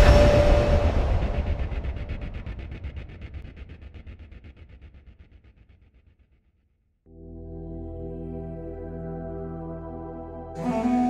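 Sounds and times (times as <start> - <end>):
deep rumble with pulsing flutter: 0.0 - 6.4.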